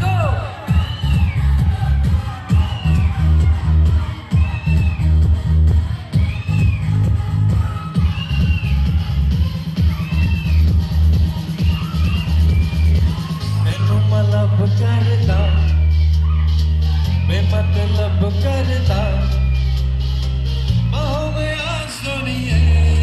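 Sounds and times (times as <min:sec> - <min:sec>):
electronic dance music: 0:00.0 - 0:23.0.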